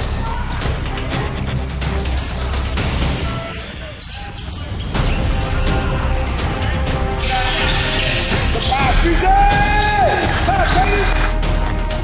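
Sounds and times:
background music: 0:00.0 - 0:12.0
sneakers squeaking on court floor: 0:02.1 - 0:05.4, 0:07.2 - 0:08.8.

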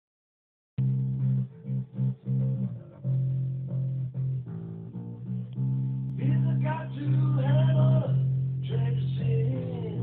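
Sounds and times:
electric bass guitar riff: 0:00.8 - 0:10.0.

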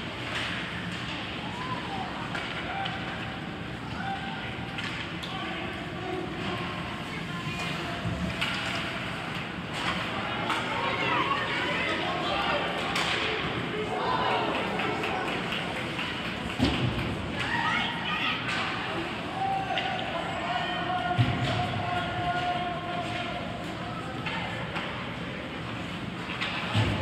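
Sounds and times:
spectators talking and calling: 0:01.0 - 0:27.0.

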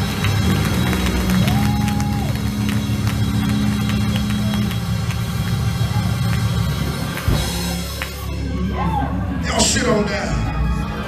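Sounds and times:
gospel band music: 0:00.0 - 0:11.0.

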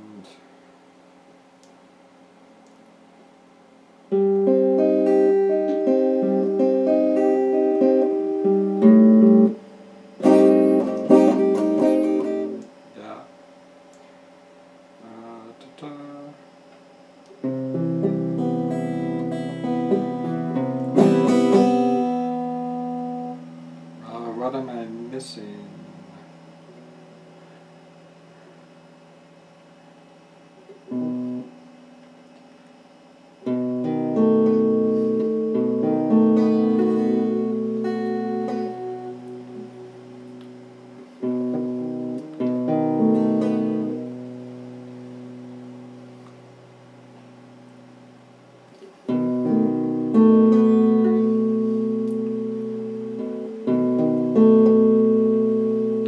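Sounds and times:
electric guitar chords: 0:04.0 - 0:13.2, 0:17.2 - 0:29.5, 0:30.6 - 0:32.4, 0:33.4 - 0:56.0.

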